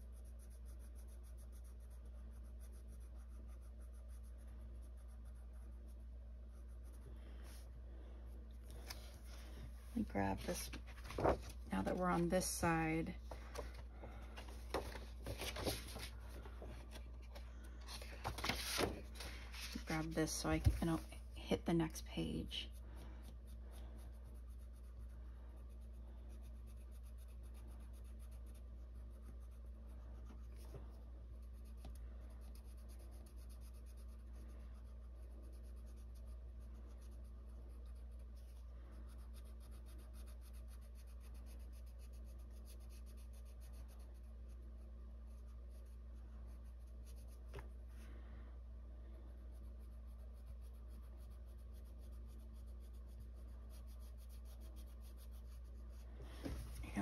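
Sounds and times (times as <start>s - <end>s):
colored pencil scratching on paper: 0.0s - 7.7s, 17.9s - 48.0s, 49.3s - 57.0s
steady low hum: 0.0s - 57.0s.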